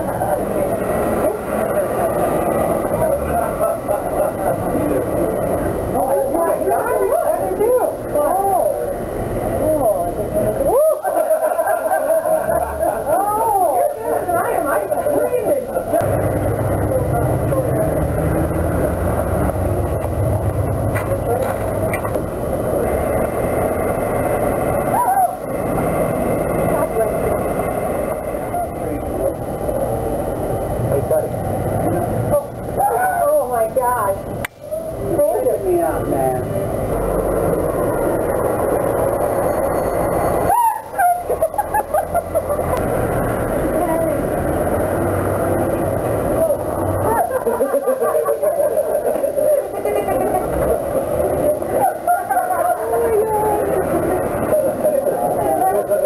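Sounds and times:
indistinct voices and chatter: 0:00.0 - 0:56.0.

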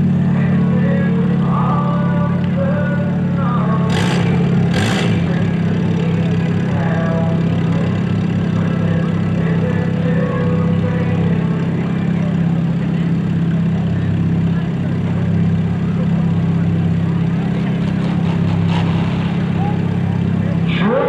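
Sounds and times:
race car engines idling: 0:00.0 - 0:21.0
short sharp engine bursts: 0:03.7 - 0:12.6, 0:17.4 - 0:21.0.

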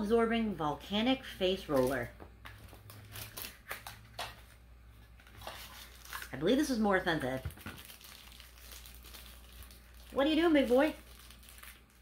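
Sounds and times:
package crinkling and clicking: 0:02.5 - 0:04.5, 0:05.2 - 0:06.4, 0:07.2 - 0:12.0.

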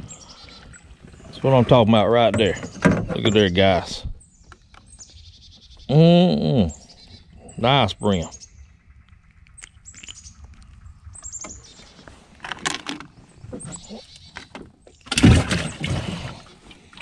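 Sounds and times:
small birds chirping: 0:00.0 - 0:17.0
handling knocks and rustles: 0:12.4 - 0:15.7.

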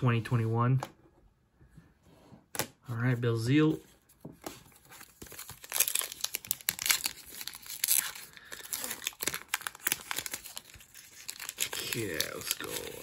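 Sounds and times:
foil wrapper crinkling and tearing: 0:05.0 - 0:13.0.

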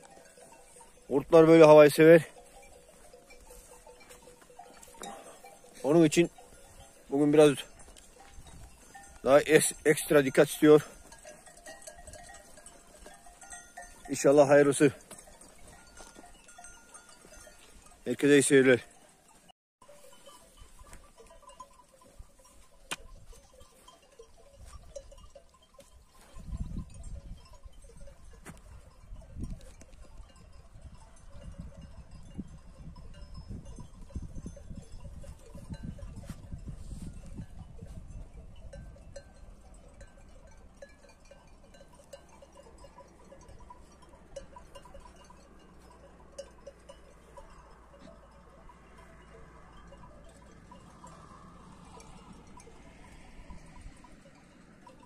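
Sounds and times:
sheep bells clinking: 0:00.0 - 0:55.0.

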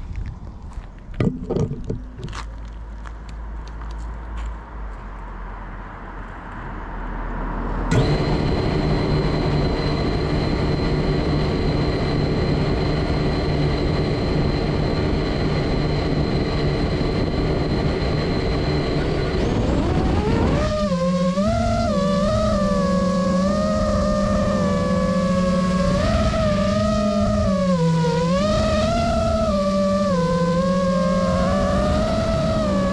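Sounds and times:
quadcopter motors whining: 0:07.9 - 0:32.9.

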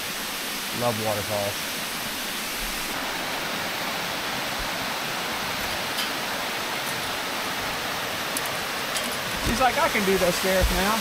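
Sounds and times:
waterfall rushing over rocks: 0:00.0 - 0:11.0.

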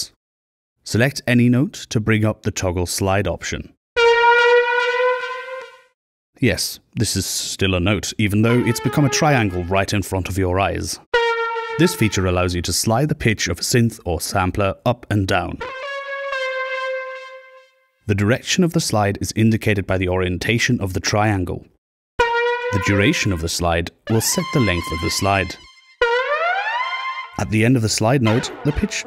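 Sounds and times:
synthesizer note bending up: 0:04.0 - 0:05.9, 0:08.5 - 0:09.8, 0:11.2 - 0:12.2, 0:15.6 - 0:17.8, 0:22.2 - 0:23.4, 0:24.1 - 0:27.6, 0:28.2 - 0:29.0.

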